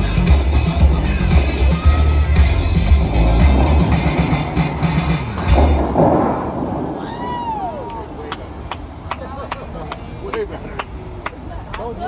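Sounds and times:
music with heavy bass beat: 0.0s - 6.4s
fountain spray rushing: 0.0s - 12.0s.

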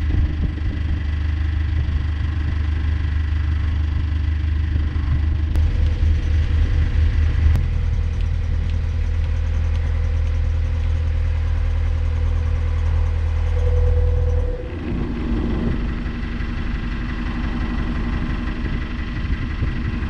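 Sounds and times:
diesel engine running: 0.0s - 20.0s.

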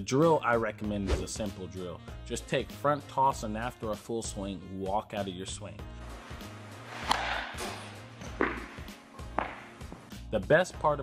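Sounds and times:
background music: 0.0s - 11.0s
bat cracking against ball: 6.3s - 10.1s.

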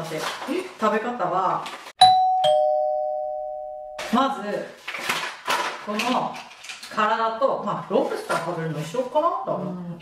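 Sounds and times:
two-note ding-dong chime: 2.0s - 4.0s.

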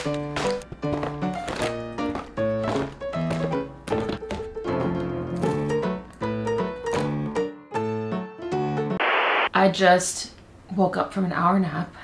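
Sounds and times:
keyboard-like background music: 0.0s - 9.0s.

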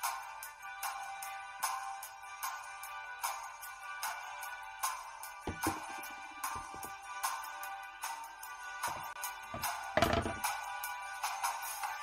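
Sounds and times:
background music with drum beat: 0.0s - 12.0s.

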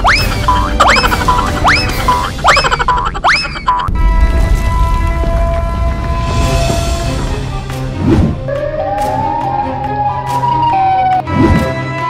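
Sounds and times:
backing music: 3.9s - 12.0s.

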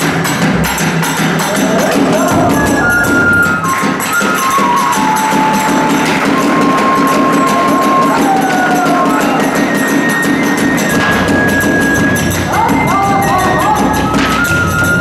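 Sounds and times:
barrel drum beat: 0.0s - 15.0s
bamboo flute melody: 1.0s - 15.0s.

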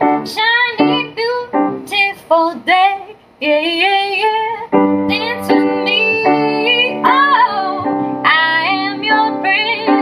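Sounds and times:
grand piano chords: 0.0s - 10.0s.

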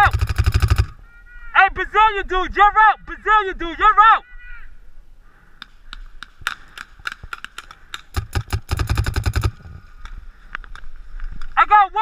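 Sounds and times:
paintball markers firing: 5.6s - 9.8s.

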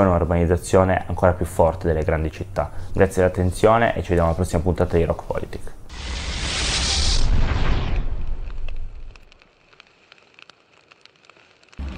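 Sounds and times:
faint fire crackling: 0.0s - 11.9s
fiery whoosh: 5.9s - 9.3s.

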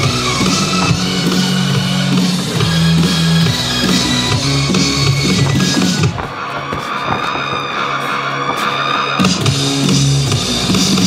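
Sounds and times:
rock music: 0.0s - 11.0s.

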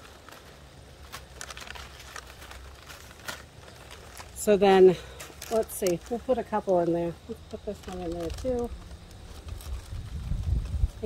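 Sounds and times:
paper bag crinkling: 0.0s - 11.0s.

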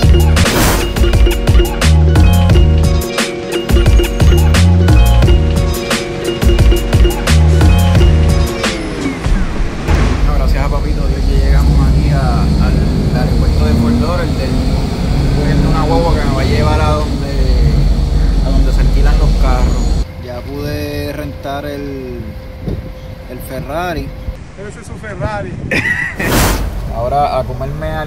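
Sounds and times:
background music with beat: 0.0s - 10.2s
moving bus rumble: 0.0s - 24.6s
man talking: 10.2s - 22.4s, 23.3s - 25.7s, 26.9s - 28.0s.

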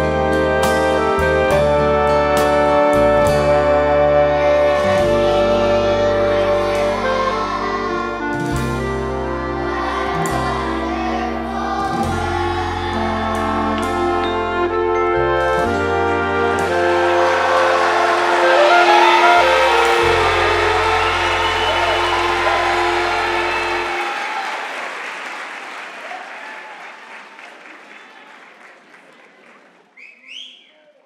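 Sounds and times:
children's song backing track: 3.0s - 24.0s
audience applause: 15.8s - 30.0s.

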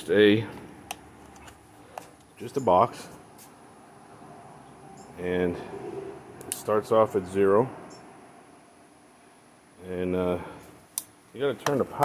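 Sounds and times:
man speaking: 2.4s - 3.2s, 5.2s - 5.8s, 6.6s - 7.8s, 9.8s - 10.6s, 11.4s - 12.0s.

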